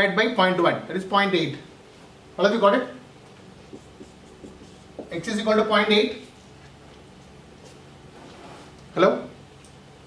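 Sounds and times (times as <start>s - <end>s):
low room hum: 0.0s - 10.0s
marker pen on whiteboard: 3.2s - 8.9s.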